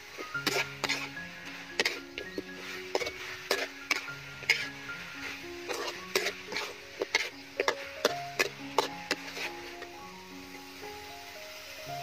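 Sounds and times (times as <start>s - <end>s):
metal spatula scraping steel wok: 0.0s - 10.0s
food sizzling: 0.0s - 12.0s.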